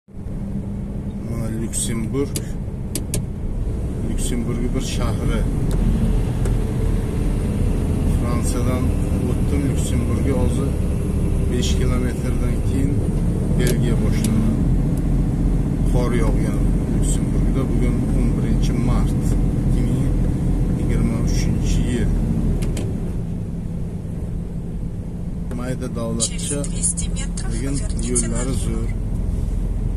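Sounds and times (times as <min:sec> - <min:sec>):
engine and road rumble: 0:00.0 - 0:29.9.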